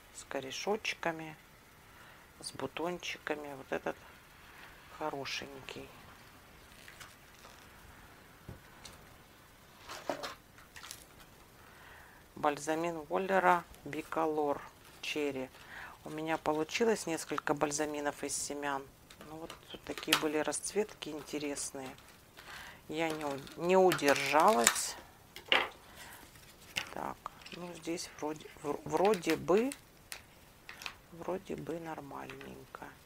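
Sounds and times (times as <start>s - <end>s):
plastic packaging crackling: 5.7s - 8.0s, 9.7s - 11.6s, 12.9s - 32.9s.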